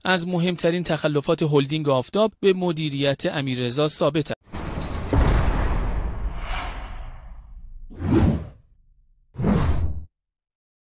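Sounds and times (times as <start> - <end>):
short whooshes: 6.0 - 8.6, 9.4 - 10.1.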